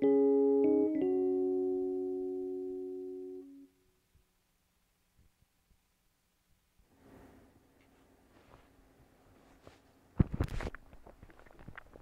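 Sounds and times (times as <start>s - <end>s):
synthesizer chord: 0.0s - 3.8s.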